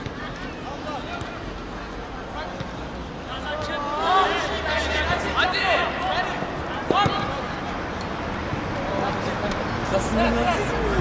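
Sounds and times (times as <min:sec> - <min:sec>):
background crowd murmur: 0:00.0 - 0:11.0
people calling and talking: 0:00.0 - 0:11.0.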